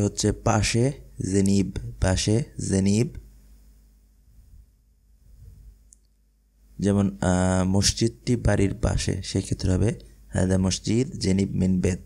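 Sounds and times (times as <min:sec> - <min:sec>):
person speaking: 0:00.0 - 0:03.3, 0:06.8 - 0:12.0
faint click: 0:05.8 - 0:06.2.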